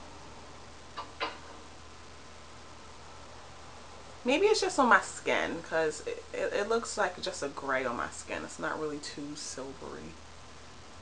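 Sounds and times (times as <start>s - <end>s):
low microphone hiss: 0.0s - 11.0s.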